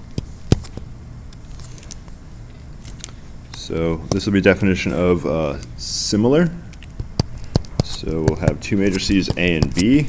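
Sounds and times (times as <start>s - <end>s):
stylus tapping on tablet screen: 0.1s - 0.9s, 7.0s - 9.9s.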